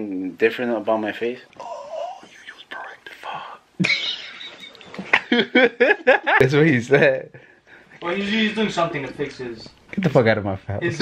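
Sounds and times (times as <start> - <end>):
person whispering: 1.6 - 3.7.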